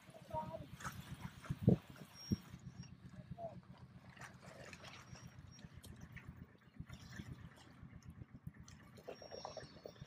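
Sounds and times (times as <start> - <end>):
low pulsing hum: 0.0 - 10.0.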